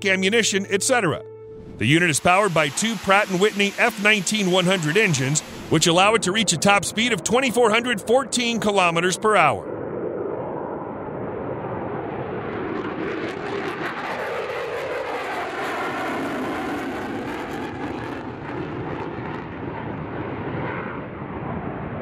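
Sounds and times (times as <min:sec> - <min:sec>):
jet fighter roar with crackle: 0:02.2 - 0:22.0.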